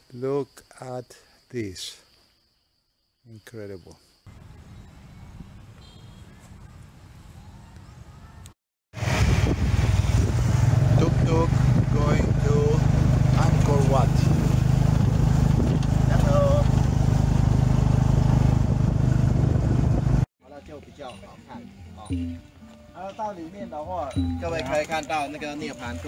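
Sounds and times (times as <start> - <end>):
people speaking: 0.1 - 2.0, 3.3 - 4.0, 11.0 - 12.8, 13.4 - 14.3, 16.1 - 16.7, 20.4 - 22.4, 23.0 - 26.0
vehicle engine and road drone: 9.0 - 20.3.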